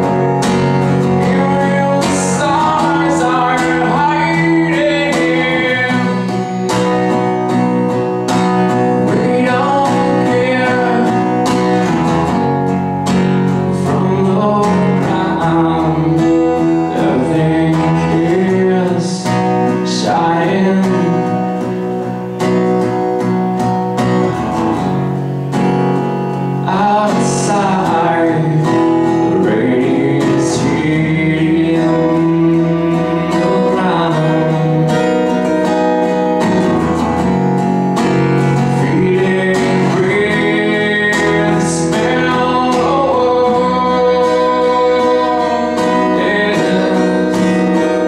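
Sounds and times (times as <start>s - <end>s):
man singing: 0.0s - 22.2s, 26.4s - 36.8s, 38.3s - 48.0s
acoustic guitar strumming: 0.0s - 48.0s.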